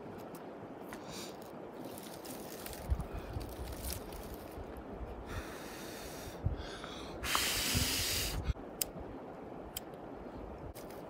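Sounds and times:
person blowing on kindling: 7.2 - 8.6.

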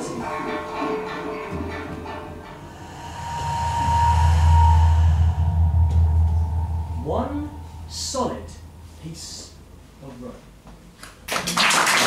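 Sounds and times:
steady high tone: 0.0 - 10.2
deep rumbling drone: 1.6 - 10.6.

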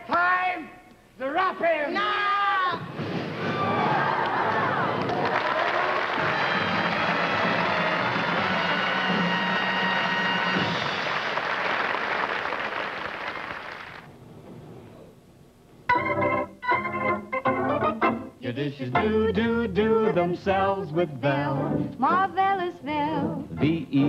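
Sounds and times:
audience applause: 3.5 - 14.1
band music: 5.9 - 11.3, 15.9 - 24.0.

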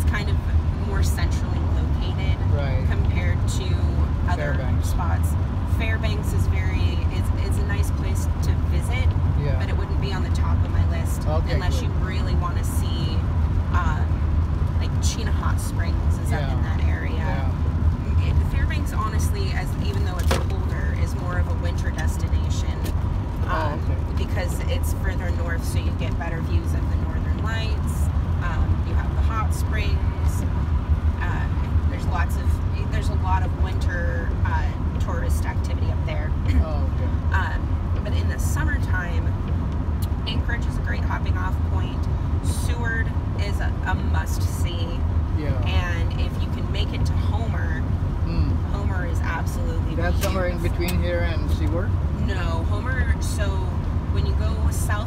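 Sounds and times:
woman talking: 0.0 - 14.2, 14.8 - 30.5, 31.2 - 39.4, 40.0 - 47.9, 48.7 - 50.7, 52.1 - 55.0
road and engine rumble in a van: 0.0 - 55.0.

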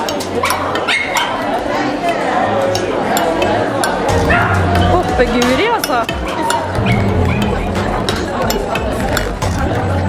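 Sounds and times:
people chattering: 0.0 - 10.0
dog barking: 0.4 - 1.4.

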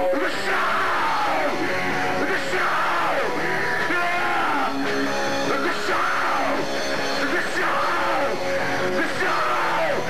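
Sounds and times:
electric guitars: 0.0 - 10.0.

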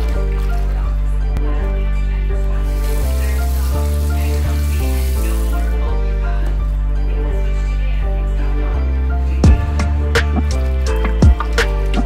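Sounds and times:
background music: 0.0 - 12.0
water running into metal sink: 2.7 - 5.7.

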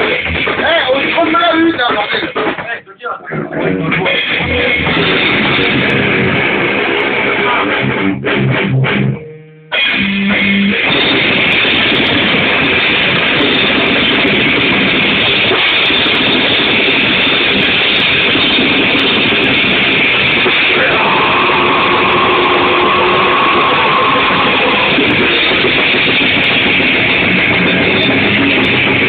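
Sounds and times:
distorted electric guitars: 0.0 - 29.0
drums: 0.0 - 29.0.

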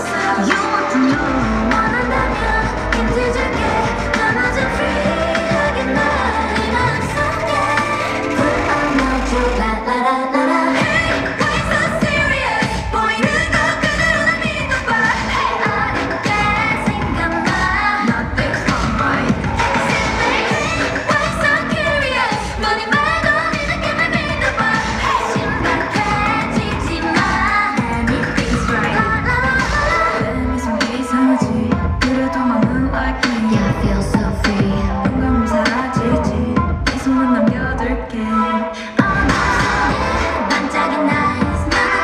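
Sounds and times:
pop dance song over sound system: 0.0 - 42.0.

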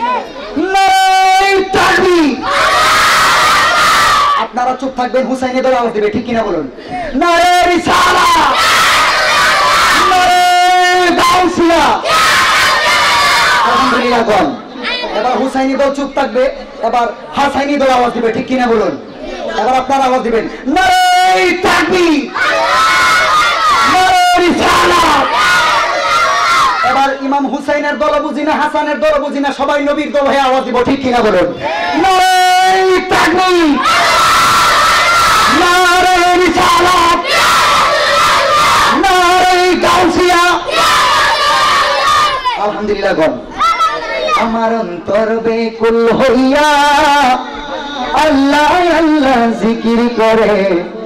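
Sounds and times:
crowd shouting along: 0.0 - 0.8, 1.4 - 4.5, 7.8 - 15.4, 21.3 - 27.2, 31.5 - 44.5.

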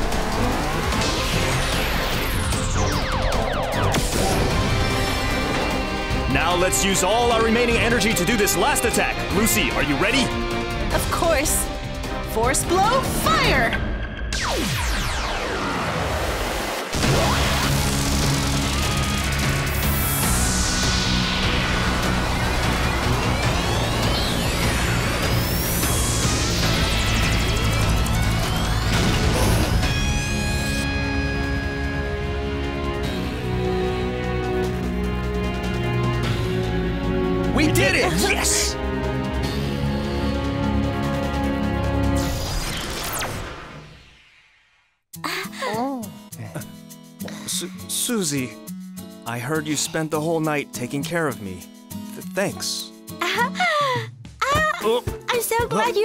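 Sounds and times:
crashes and blasts: 0.0 - 6.6, 14.3 - 30.6
dramatic background music: 0.0 - 44.0.

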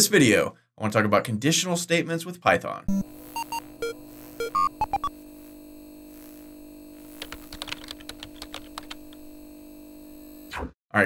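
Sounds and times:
steady electrical hum: 3.0 - 9.8
computer keyboard typing: 7.2 - 9.2.

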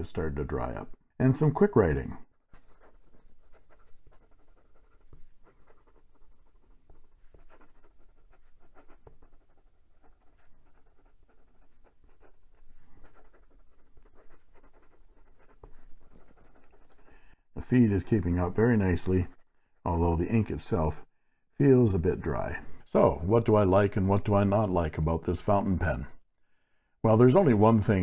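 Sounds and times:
pen nib scratching paper: 2.3 - 17.2, 19.0 - 19.6.

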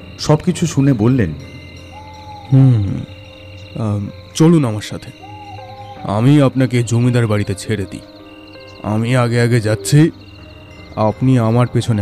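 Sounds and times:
man's wordless vocalisation: 2.5 - 3.1.

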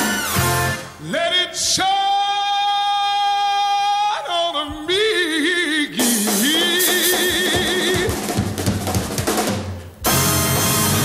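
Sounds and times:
band accompaniment: 0.0 - 1.1, 5.9 - 11.0
man singing high note: 1.0 - 8.2.

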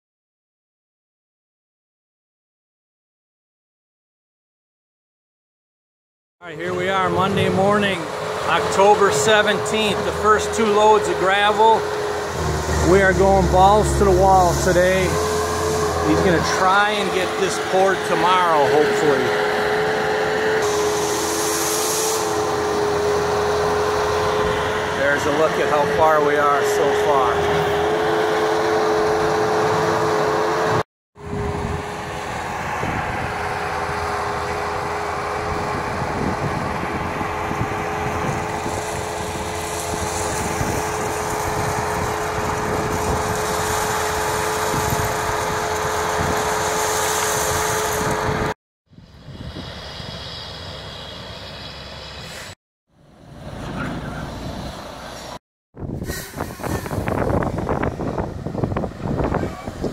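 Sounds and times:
loader diesel engine running: 6.5 - 48.5, 49.1 - 52.4.

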